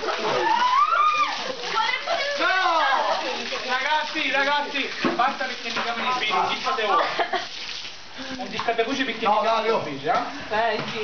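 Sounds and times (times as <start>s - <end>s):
people shrieking and shouting: 0.0s - 3.4s
water splashing from a hose: 0.0s - 11.0s.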